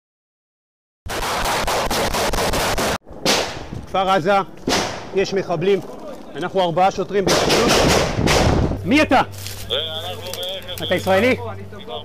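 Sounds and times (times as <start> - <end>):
rapid gunfire burst: 1.1 - 3.0
single loud gunshot: 1.1 - 3.7, 4.7 - 5.1, 7.3 - 8.7.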